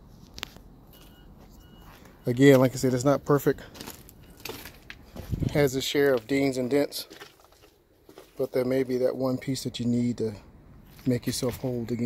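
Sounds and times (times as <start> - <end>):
outdoor background noise: 0.0 - 12.0
faint short high beeps: 0.9 - 2.4.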